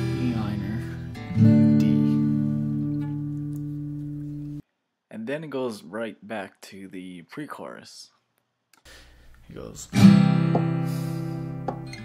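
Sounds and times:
acoustic guitar chord ringing: 0.0 - 4.6, 10.0 - 12.0.

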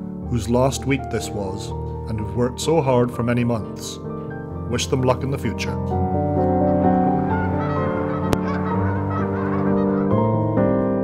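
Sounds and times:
background music with sustained chords: 0.0 - 11.0
geese honking: 6.4 - 11.0.

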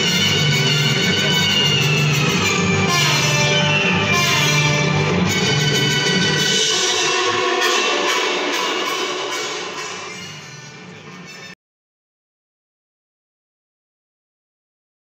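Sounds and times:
music with sustained tones: 0.0 - 11.6.

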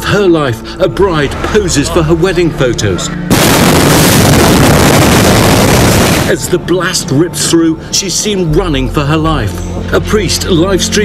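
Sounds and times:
explosion blast wave rush: 3.3 - 6.4.

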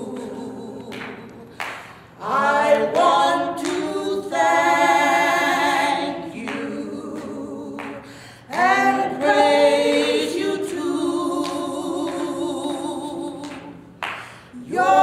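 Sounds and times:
two women singing unaccompanied: 0.0 - 15.0.

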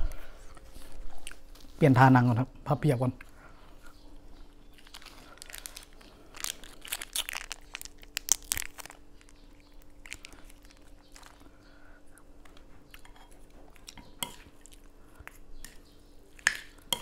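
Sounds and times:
vegetable snapping and tearing: 4.8 - 11.4.

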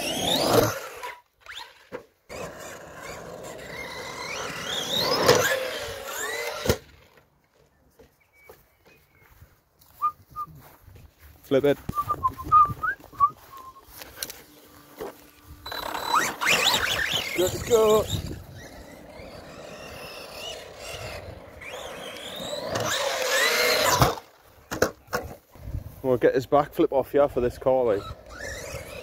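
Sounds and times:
electric motor whining: 0.0 - 7.2, 12.3 - 24.4, 27.8 - 29.0
tyre noise: 9.9 - 26.2.

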